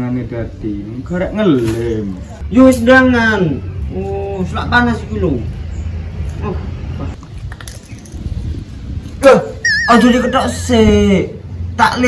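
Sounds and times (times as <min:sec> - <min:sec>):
short falling yelp: 0:09.6 - 0:10.6
wavering whistle-like tone: 0:09.6 - 0:10.8.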